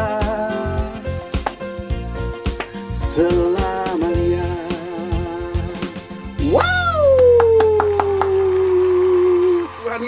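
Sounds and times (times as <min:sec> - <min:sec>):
quick hand claps: 0:01.3 - 0:01.8, 0:02.4 - 0:02.9, 0:06.5 - 0:10.0
man cheering woo: 0:06.4 - 0:10.0.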